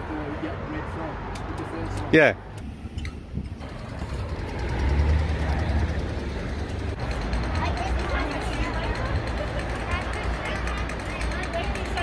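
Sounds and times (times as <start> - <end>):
heavy vehicle passing: 0.0 - 12.0
low rumble of road traffic: 0.0 - 12.0.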